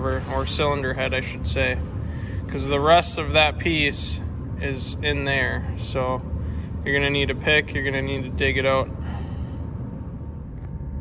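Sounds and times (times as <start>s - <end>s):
low room noise rumble: 0.0s - 11.0s.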